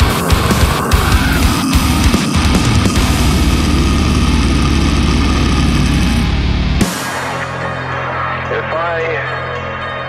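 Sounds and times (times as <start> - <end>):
metal drums: 0.0 - 8.2
distorted metal guitars: 0.0 - 10.0.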